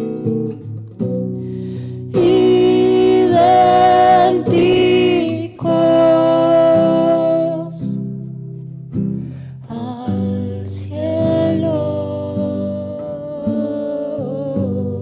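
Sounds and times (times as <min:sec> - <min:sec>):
acoustic guitar: 0:00.0 - 0:15.0
woman singing: 0:02.0 - 0:08.2, 0:09.6 - 0:15.0.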